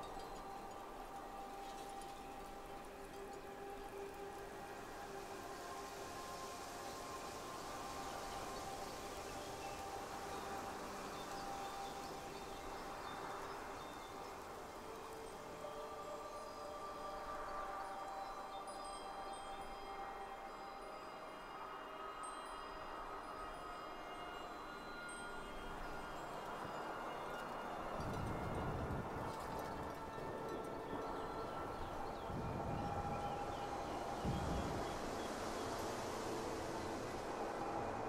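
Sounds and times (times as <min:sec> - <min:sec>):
soft chimes ringing: 0:00.0 - 0:38.0
steady wind: 0:00.0 - 0:38.0.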